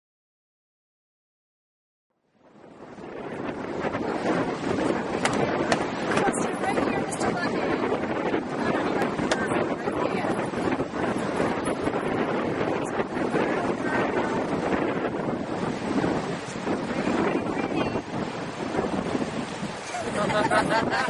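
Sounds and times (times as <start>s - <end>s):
ocean surf rolling: 2.3s - 21.0s
wind buffeting microphone: 2.3s - 21.0s.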